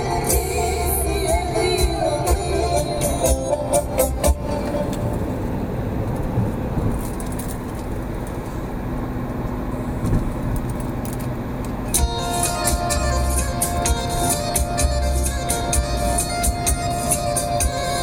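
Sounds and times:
car stereo music: 0.0s - 6.1s, 11.9s - 18.0s
car engine hum: 0.0s - 18.0s
road and tyre noise: 0.0s - 18.0s.

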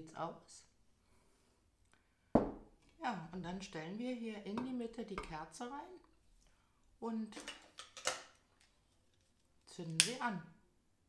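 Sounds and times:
glass vase knocking on wooden table: 2.4s - 2.7s.

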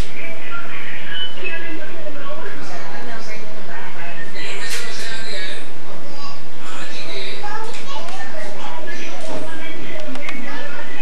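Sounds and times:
children talking and calling out: 7.1s - 11.0s.

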